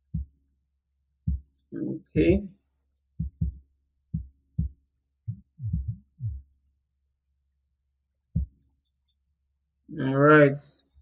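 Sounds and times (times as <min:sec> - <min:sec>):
man speaking: 0:01.8 - 0:02.5.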